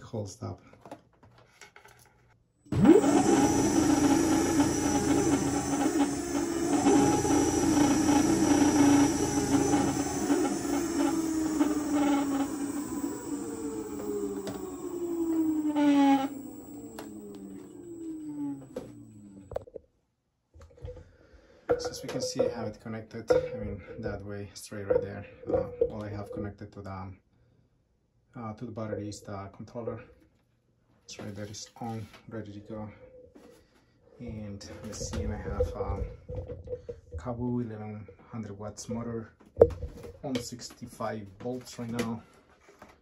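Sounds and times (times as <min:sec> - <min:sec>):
electric motor whining: 0:02.7 - 0:19.6.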